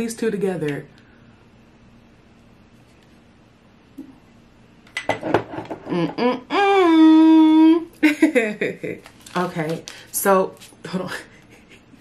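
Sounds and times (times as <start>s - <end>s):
person humming: 5.8s - 7.9s.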